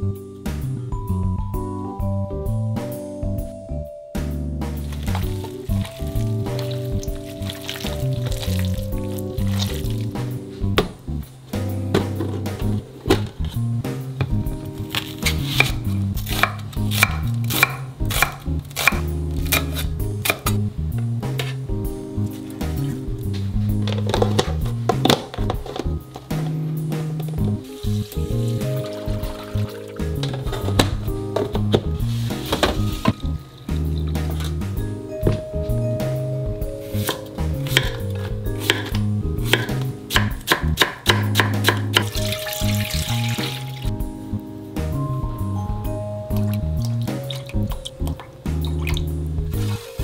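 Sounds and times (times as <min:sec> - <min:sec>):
knife chopping on wooden board: 0:15.0 - 0:20.6, 0:37.0 - 0:38.0, 0:38.6 - 0:42.1.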